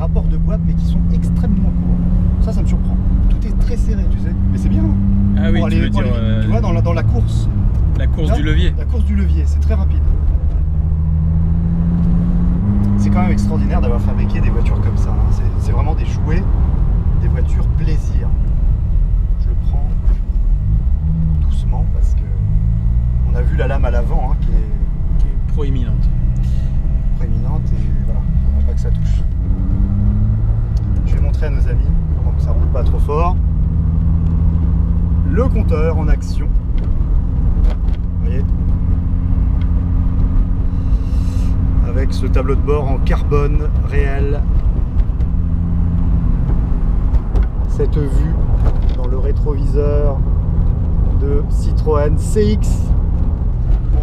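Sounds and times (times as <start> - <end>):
car engine drone inside cabin: 0.0 - 54.0.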